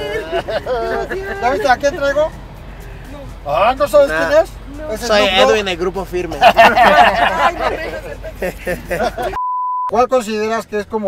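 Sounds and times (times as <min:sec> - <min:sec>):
person laughing while speaking: 0:00.0 - 0:02.2, 0:06.4 - 0:09.4
censor bleep: 0:09.4 - 0:10.0.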